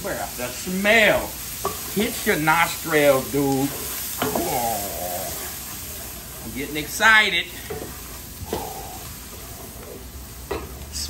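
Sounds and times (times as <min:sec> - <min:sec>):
vegetables and meat sizzling in pot: 0:00.0 - 0:11.0.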